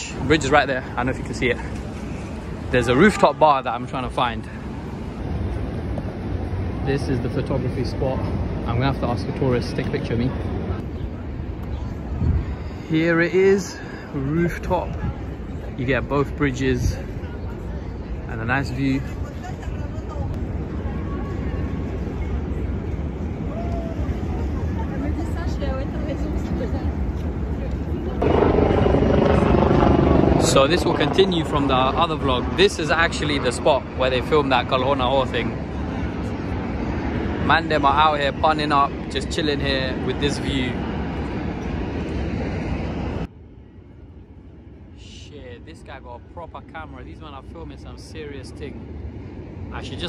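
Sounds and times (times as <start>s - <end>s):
low outdoor rumble: 19.1s - 50.0s.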